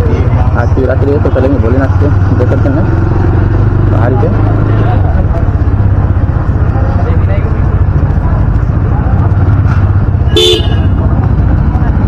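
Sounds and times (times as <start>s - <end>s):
motorcycle engine running: 0.0s - 12.0s
vehicle horn toot: 10.3s - 11.0s.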